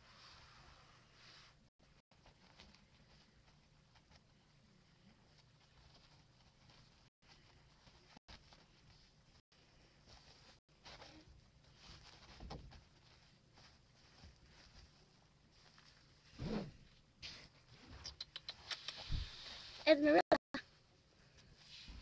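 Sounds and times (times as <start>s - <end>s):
puppy rustling on bedding: 0.4s - 17.9s.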